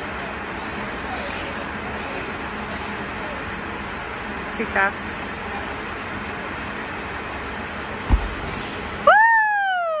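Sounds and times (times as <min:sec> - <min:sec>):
dull thud of landing on mat: 0:08.1 - 0:08.7
high-pitched woo cheer: 0:09.0 - 0:10.0.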